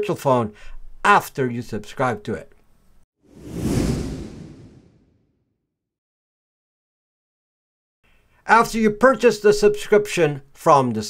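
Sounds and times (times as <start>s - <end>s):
whoosh sound effect: 3.3s - 5.2s.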